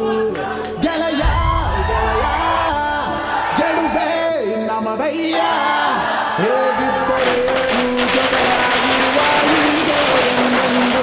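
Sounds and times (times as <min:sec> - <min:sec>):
firecrackers crackling: 0:07.1 - 0:11.0.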